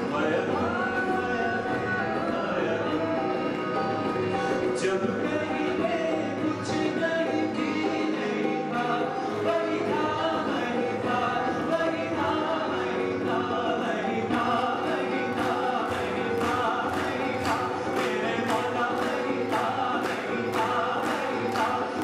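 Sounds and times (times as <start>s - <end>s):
acoustic guitar: 0.0s - 22.0s
harmonium: 0.0s - 22.0s
keyboard: 0.0s - 22.0s
men singing: 0.0s - 22.0s
hand drums beat: 13.3s - 22.0s.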